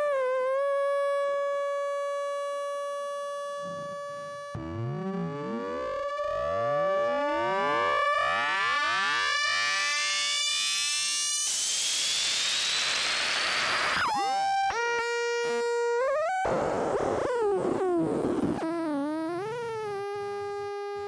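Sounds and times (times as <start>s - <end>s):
falling tone into buzzy note: 3.4s - 9.8s
synthesizer drone with sweeping overtones: 3.6s - 9.8s.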